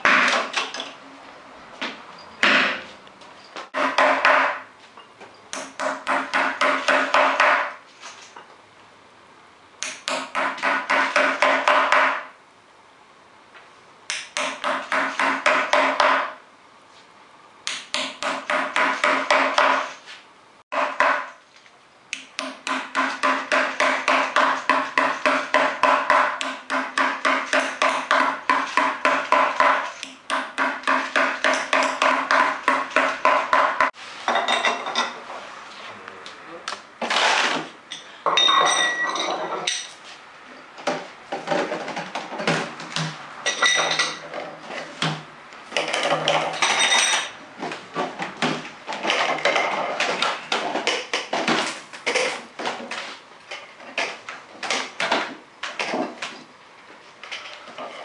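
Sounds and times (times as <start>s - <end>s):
metallic clinks and knocks: 37.9s - 40.0s.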